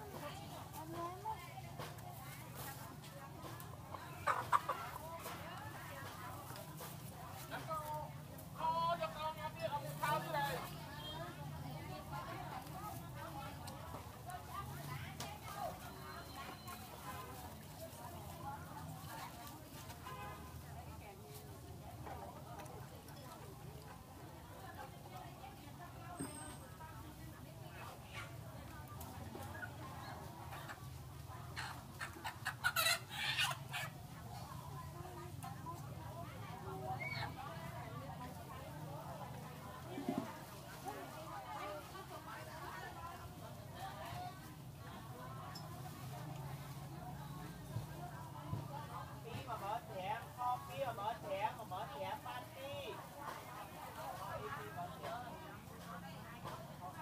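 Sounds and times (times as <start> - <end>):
chicken clucking: 3.4 - 7.4, 29.4 - 34.6
chicken sharp loud calls: 31.6 - 34.0.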